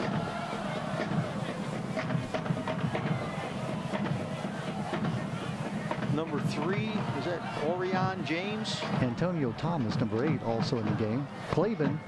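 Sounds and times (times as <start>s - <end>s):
crowd chattering and calling: 0.0s - 12.0s
scattered knocks or claps: 1.0s - 7.2s.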